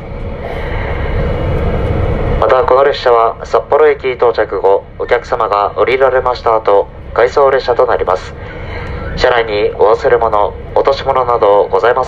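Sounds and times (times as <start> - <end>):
train running rumble inside car: 0.0 - 12.0.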